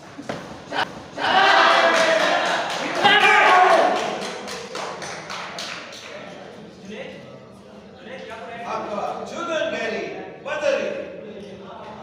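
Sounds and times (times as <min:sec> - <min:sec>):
people shouting: 0:00.7 - 0:04.2.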